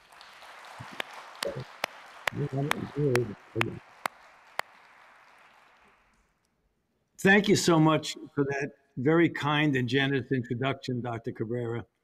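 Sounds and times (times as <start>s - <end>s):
faint applause: 0.0s - 6.4s.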